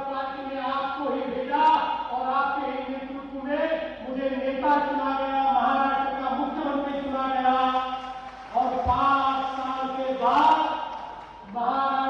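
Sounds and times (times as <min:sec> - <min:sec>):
man chanting through microphones: 0:00.0 - 0:12.0.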